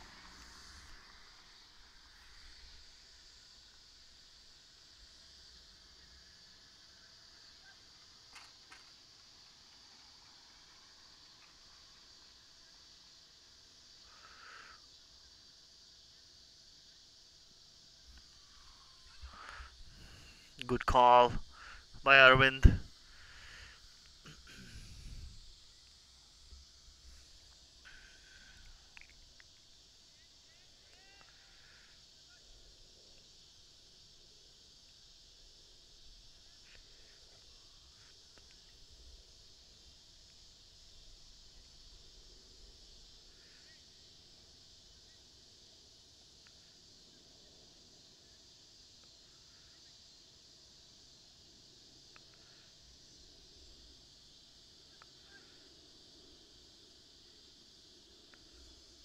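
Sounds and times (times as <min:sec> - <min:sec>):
steady high hiss: 0:00.0 - 0:59.0.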